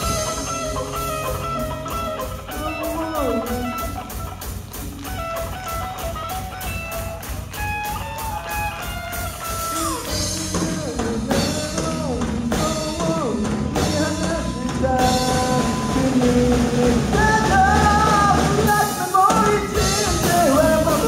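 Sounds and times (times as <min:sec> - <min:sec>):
bass guitar: 0:00.0 - 0:21.0
drum kit beat with cymbals: 0:00.0 - 0:21.0
electric guitar sliding notes: 0:00.0 - 0:21.0.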